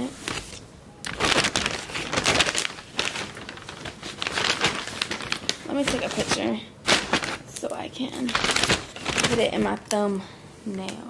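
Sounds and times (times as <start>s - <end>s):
paper bag rustling and crinkling: 0.0s - 9.8s.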